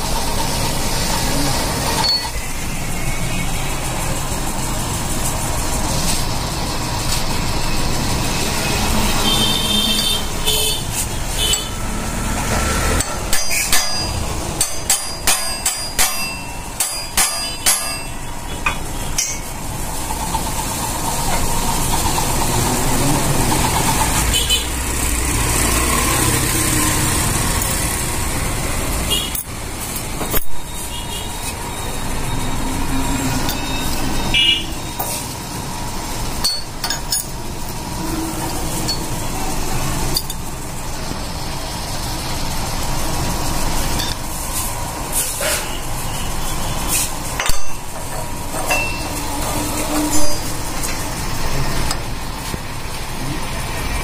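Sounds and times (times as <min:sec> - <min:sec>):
traffic: 0:00.0 - 0:54.0
workshop background noise: 0:00.0 - 0:54.0
metal clanks and taps: 0:13.0 - 0:19.5, 0:36.4 - 0:37.4, 0:47.4 - 0:49.3.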